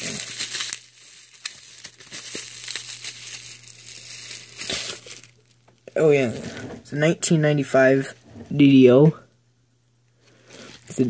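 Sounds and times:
packaging crinkling and rustling: 0.0 - 5.8.

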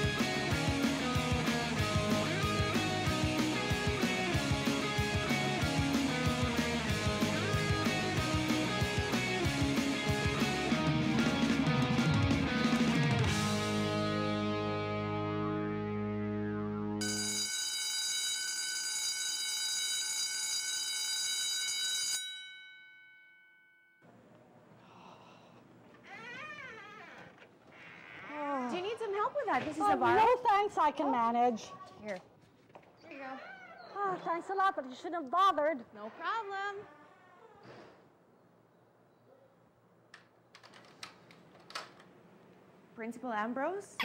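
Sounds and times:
bell ringing: 17.0 - 24.0.

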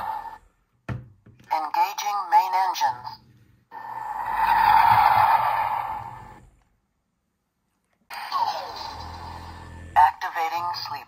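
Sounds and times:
toy rocket thrust whooshing: 3.7 - 6.5.

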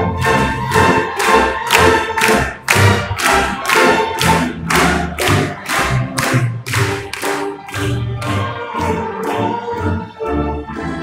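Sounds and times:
orchestra playing film music: 0.0 - 11.0.

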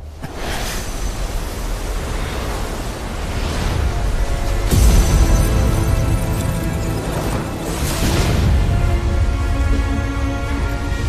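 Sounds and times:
loud rushing flame: 0.2 - 9.2.

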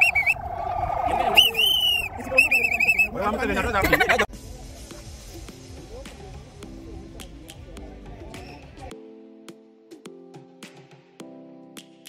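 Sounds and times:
voices: 0.0 - 5.1
low outdoor rumble: 0.0 - 6.5
background music with percussive beat: 4.3 - 12.0.

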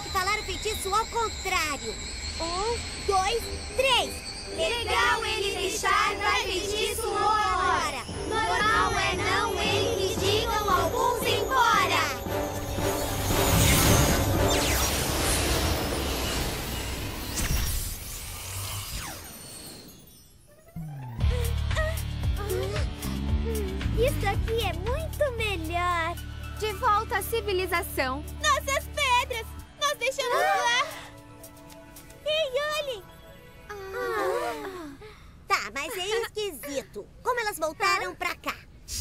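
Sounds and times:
falling whistling tones: 0.0 - 7.3
cartoon magic shimmer: 0.0 - 21.2
girls' high-pitched voices: 28.4 - 31.1, 33.7 - 38.7.

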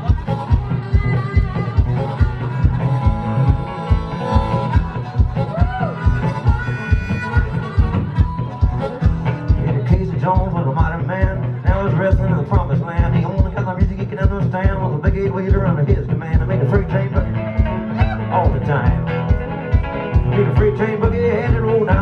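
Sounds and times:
harmonica playing bent notes: 0.0 - 12.1, 16.2 - 22.0
acoustic guitar: 0.0 - 22.0
low thumping beat: 0.0 - 22.0.

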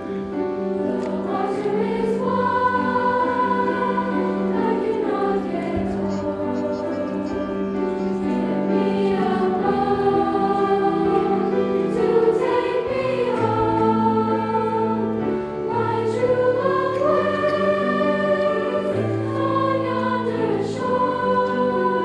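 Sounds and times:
grand piano: 0.0 - 22.0
girls' choir singing: 0.3 - 22.0.

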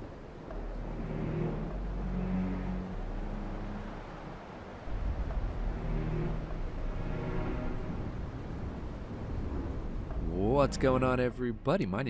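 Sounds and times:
low rumbling noise: 0.0 - 12.0.

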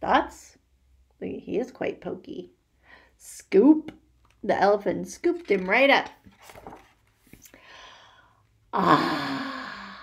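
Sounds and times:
book page turning: 5.2 - 7.6.

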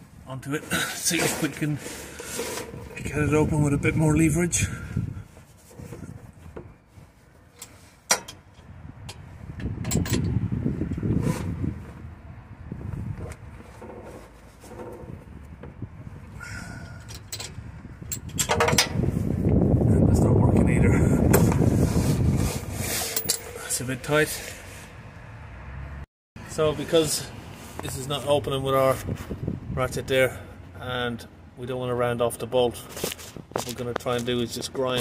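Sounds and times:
rough metal scraping: 0.6 - 3.5, 21.2 - 25.0.

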